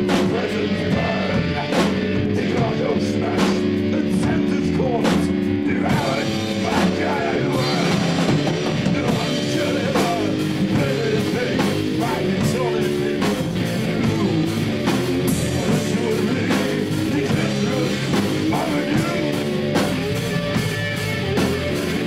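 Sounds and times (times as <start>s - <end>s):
rock band playing live: 0.0s - 22.0s.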